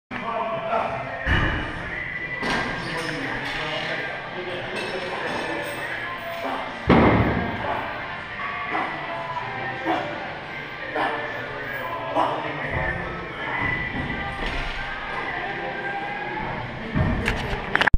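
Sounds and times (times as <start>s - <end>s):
voices in a large room: 0.1s - 17.9s
gym background music: 0.2s - 17.7s
loud thud: 6.8s - 7.6s.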